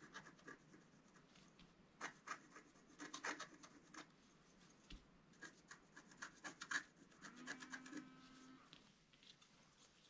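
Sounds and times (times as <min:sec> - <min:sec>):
stylus scraping scratch-art sheet: 0:05.4 - 0:08.6.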